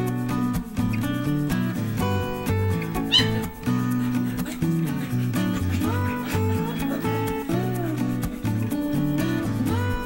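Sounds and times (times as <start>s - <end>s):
guitar music: 0.0s - 10.0s
puppy squealing: 2.8s - 3.8s.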